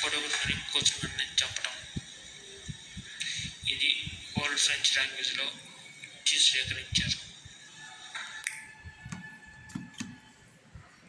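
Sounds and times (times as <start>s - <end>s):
faint low background noise: 0.0s - 11.0s.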